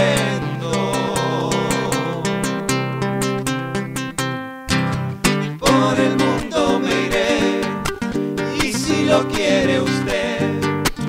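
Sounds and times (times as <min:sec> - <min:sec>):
acoustic guitars strumming: 0:00.0 - 0:11.0.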